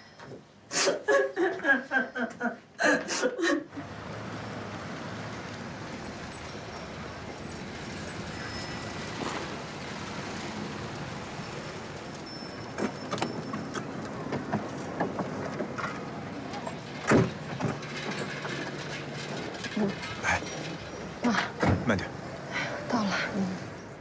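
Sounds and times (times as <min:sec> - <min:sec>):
street noise: 0:02.4 - 0:24.0.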